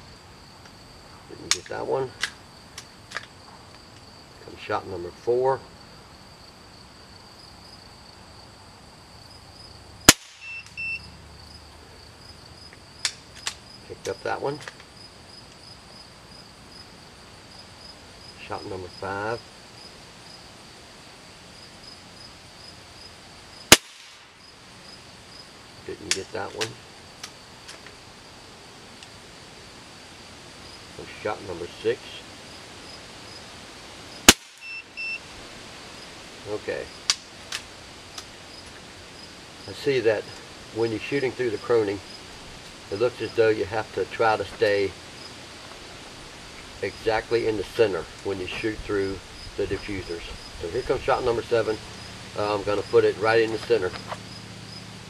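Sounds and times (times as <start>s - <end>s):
air rifle shot: 10.1s - 10.6s, 23.7s - 24.3s, 34.3s - 34.7s.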